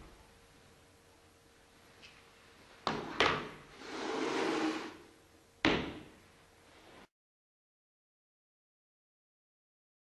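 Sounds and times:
rustling scrape: 3.7 - 5.1.

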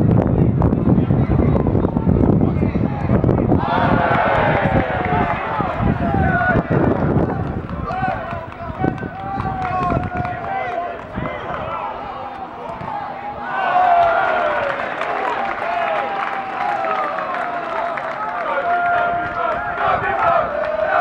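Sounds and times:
players shouting: 3.5 - 21.0.

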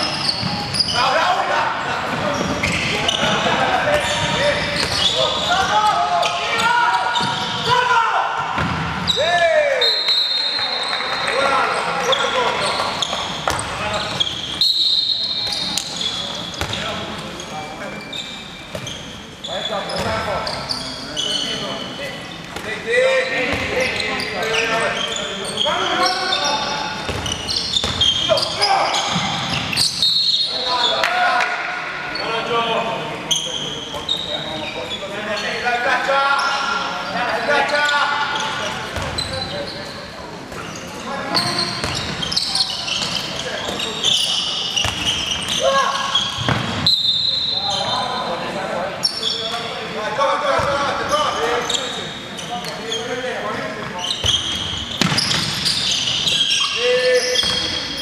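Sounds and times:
shoes squeaking on floor: 0.0 - 8.0, 8.6 - 31.0, 32.1 - 35.6, 36.3 - 48.4, 49.0 - 49.8, 50.4 - 58.0
ball bouncing on wooden court: 3.9 - 5.2, 8.4 - 9.1, 12.7 - 13.8, 16.5 - 16.8, 27.1 - 28.2, 44.8 - 45.6, 46.4 - 46.9, 54.2 - 55.6.

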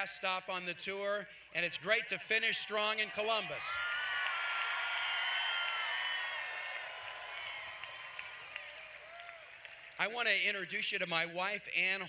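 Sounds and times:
voices whooping: 2.4 - 9.5
crowd cheering and applauding: 2.4 - 10.1.

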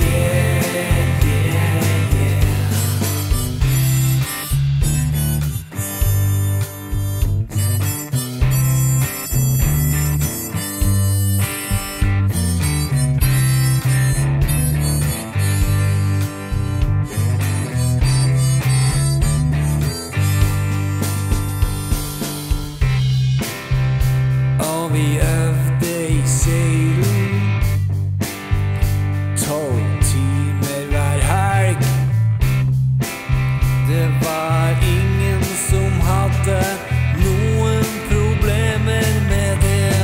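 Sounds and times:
harmonica solo: 0.0 - 24.0, 33.3 - 40.0
electric bass guitar: 0.0 - 40.0
steady beat: 0.0 - 40.0.

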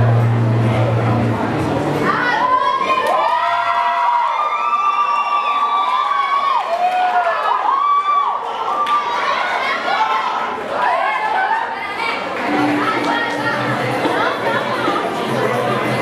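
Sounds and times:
dance music bass: 0.0 - 2.3
crowd cheering and whooping: 2.0 - 15.0.

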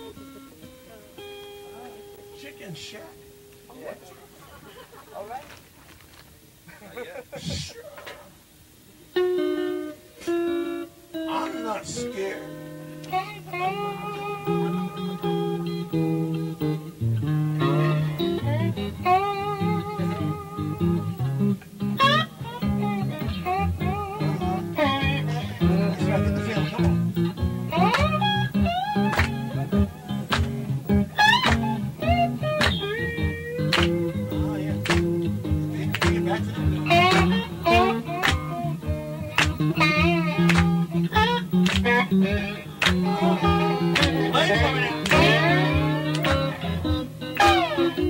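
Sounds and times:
blues guitar: 0.0 - 48.0
live blues band playing: 9.2 - 11.2, 12.0 - 48.0
low bass notes: 22.7 - 48.0.

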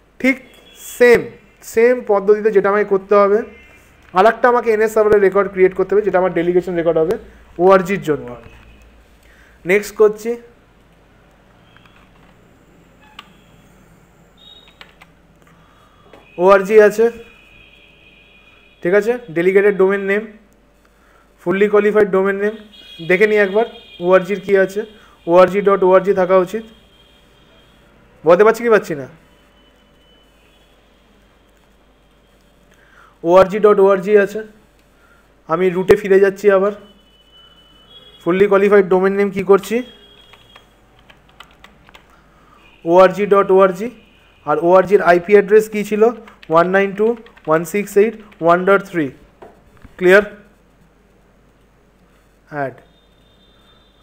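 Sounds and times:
keyboard keystrokes: 14.6 - 15.1, 40.2 - 42.1, 46.2 - 46.6, 47.2 - 48.4.

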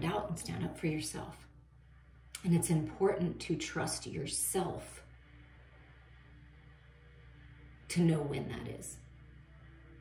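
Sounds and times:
woman speaking: 0.0 - 1.5, 2.4 - 5.1, 7.9 - 9.0
faint low hum: 0.0 - 10.0.

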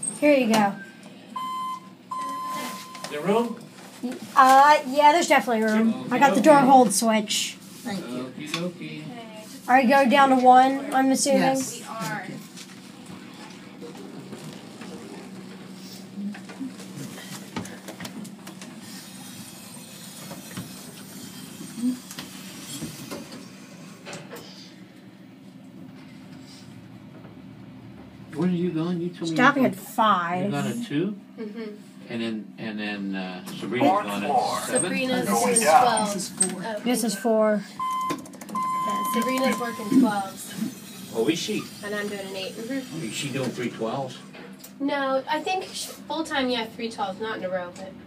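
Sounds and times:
elevator panel beeping: 0.7 - 3.3, 37.8 - 40.1
elevator car humming: 12.8 - 24.0.

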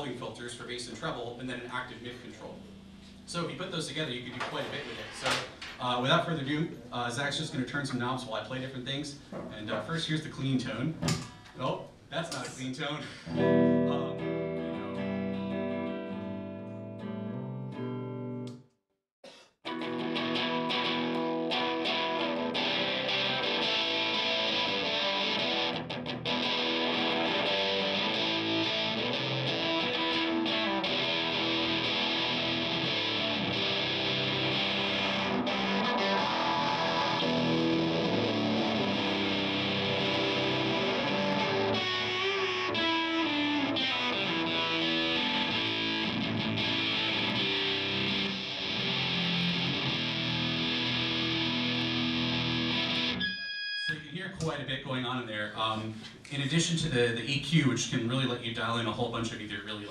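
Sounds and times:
overdriven electric guitar: 13.2 - 18.6, 19.3 - 53.3.

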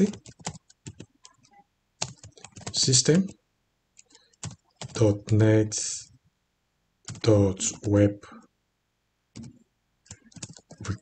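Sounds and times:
computer keyboard typing: 0.0 - 3.4, 4.0 - 5.4, 7.0 - 8.0, 9.3 - 11.0.

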